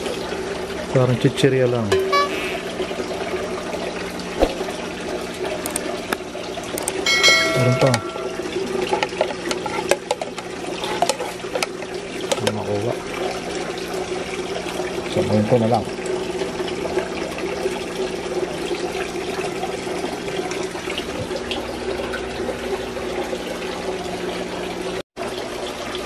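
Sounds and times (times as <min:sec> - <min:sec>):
aquarium filter humming: 0:00.0 - 0:26.0
water splashing: 0:02.0 - 0:09.8
small clicks: 0:05.7 - 0:05.9, 0:06.8 - 0:07.0.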